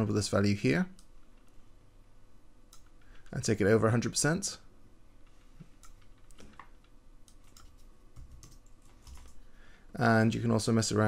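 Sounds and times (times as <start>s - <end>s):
keyboard keys tapping: 7.3s - 9.4s.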